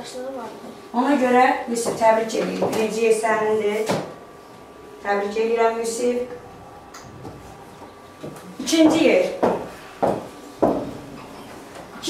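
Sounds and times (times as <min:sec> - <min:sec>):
woman speaking: 0:00.9 - 0:04.0, 0:05.0 - 0:06.4, 0:08.5 - 0:09.6.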